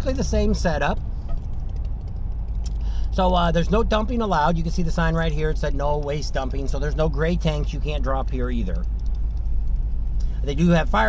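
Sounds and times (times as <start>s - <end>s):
vehicle driving on gravel road: 0.0s - 11.0s.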